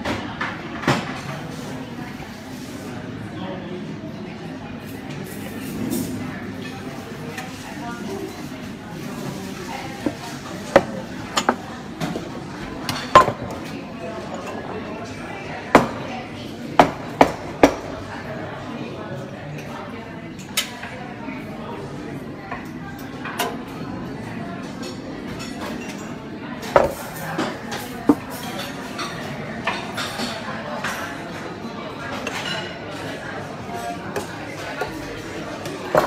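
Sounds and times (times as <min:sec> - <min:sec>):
cups and saucers clinking: 0:09.1 - 0:14.6.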